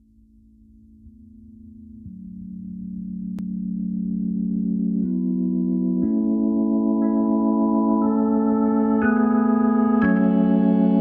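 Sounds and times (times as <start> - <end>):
electronic keyboard chords: 0.6 - 11.0.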